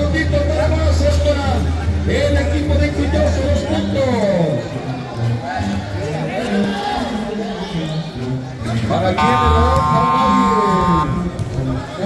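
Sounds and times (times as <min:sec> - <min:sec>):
crowd chatter and calls: 0:00.0 - 0:12.0
steady buzzing tone: 0:09.2 - 0:11.2.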